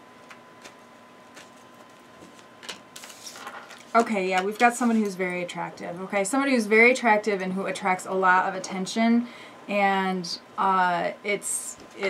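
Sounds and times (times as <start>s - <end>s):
cards being shuffled: 0.2s - 5.1s.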